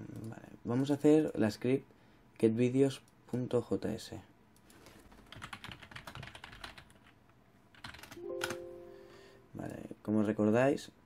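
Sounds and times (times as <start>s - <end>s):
typing on computer keyboard: 4.8s - 8.6s.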